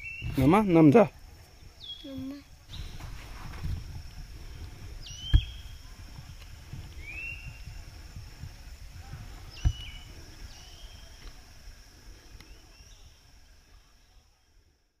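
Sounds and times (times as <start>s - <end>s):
high-pitched insect drone: 0.0s - 14.6s
sharp thumps: 5.0s - 10.2s.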